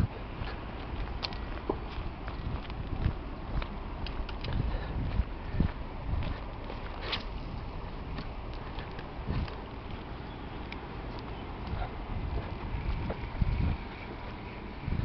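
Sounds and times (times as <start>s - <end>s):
footsteps on gravel: 0.0s - 15.0s
low rumble: 0.0s - 15.0s.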